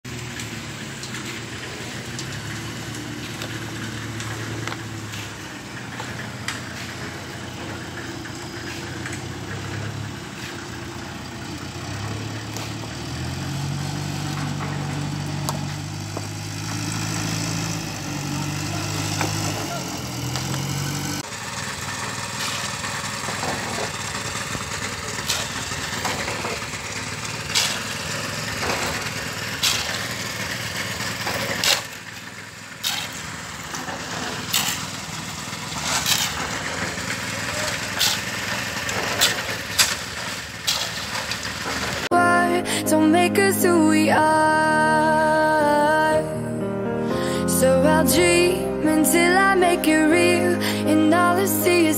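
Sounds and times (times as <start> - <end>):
shovel and rocks striking stone: 22.4 - 24.0, 25.2 - 26.7, 27.4 - 30.2, 31.2 - 32.1, 32.8 - 35.1, 35.7 - 42.0.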